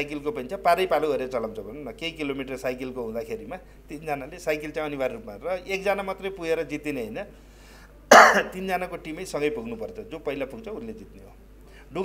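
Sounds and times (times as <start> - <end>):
man coughing: 8.1 - 8.6.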